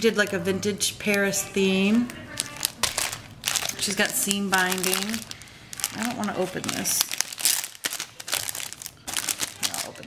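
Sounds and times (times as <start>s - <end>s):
plastic bag crinkling: 1.4s - 10.0s.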